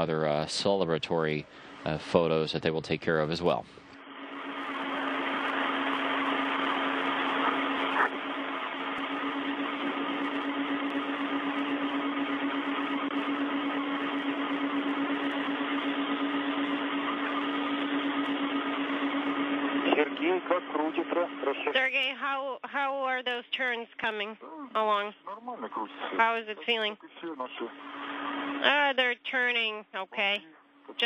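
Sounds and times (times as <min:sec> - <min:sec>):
radio hiss: 0:00.0 - 0:22.3, 0:23.6 - 0:29.0
low hum: 0:00.0 - 0:31.0.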